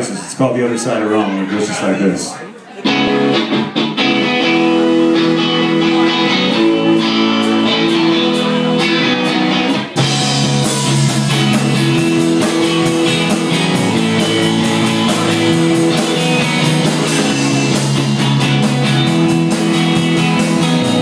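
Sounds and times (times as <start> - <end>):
rock band guitar chords: 2.8 - 21.0.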